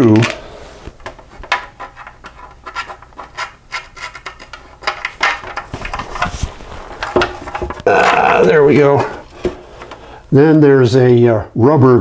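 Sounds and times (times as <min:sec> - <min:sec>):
hands rubbing on plastic: 0:00.8 - 0:10.1.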